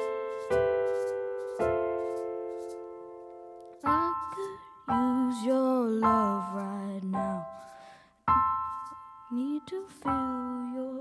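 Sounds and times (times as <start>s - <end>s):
piano chords: 0.0s - 11.0s
boy singing: 3.8s - 7.4s, 9.3s - 11.0s.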